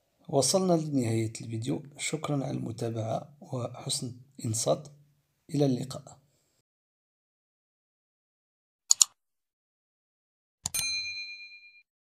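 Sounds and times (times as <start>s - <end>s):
mouse click: 8.9s - 9.2s
bright bell ding: 10.7s - 11.8s.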